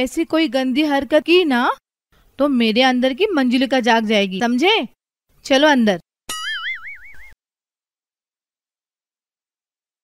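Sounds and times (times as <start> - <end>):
comic boing sound effect: 6.3 - 7.4.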